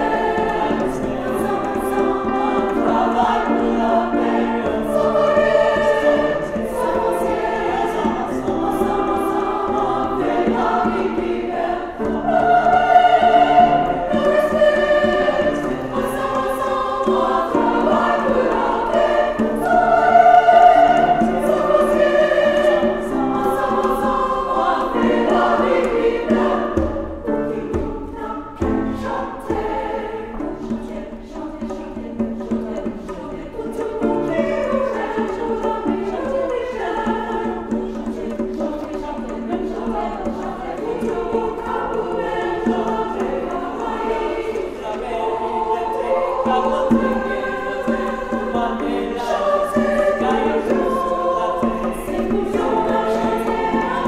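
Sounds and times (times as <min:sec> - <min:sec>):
choir singing: 0:00.0 - 0:54.0.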